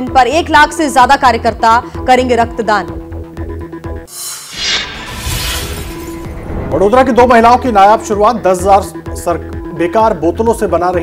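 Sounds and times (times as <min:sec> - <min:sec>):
background music bed: 0:02.0 - 0:11.0
burst of hiss: 0:04.1 - 0:06.0
shattering downward sweep effect: 0:04.2 - 0:07.1.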